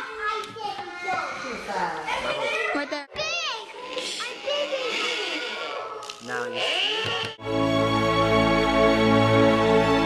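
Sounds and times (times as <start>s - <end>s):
children talking and playing: 0.0s - 7.4s.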